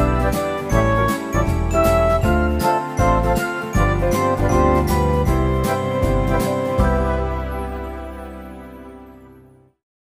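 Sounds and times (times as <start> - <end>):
bass line: 0.0 - 9.1.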